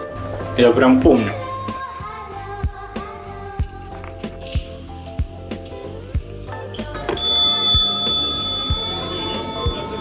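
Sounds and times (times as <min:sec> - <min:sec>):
background music with steady beat: 0:00.0 - 0:10.0
service bell ringing: 0:07.2 - 0:10.0.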